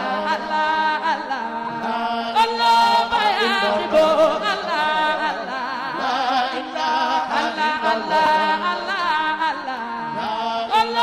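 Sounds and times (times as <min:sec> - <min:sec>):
devotional chant in long held notes: 0:00.0 - 0:11.0.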